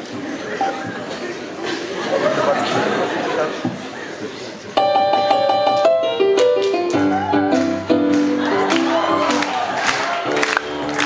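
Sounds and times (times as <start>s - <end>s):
blues piano: 4.8s - 11.0s.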